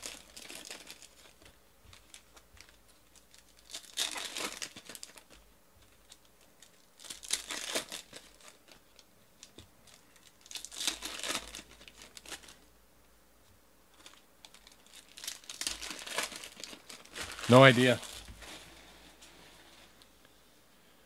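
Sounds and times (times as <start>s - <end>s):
foil wrappers crinkling and tearing: 0.0s - 12.6s, 13.9s - 18.9s.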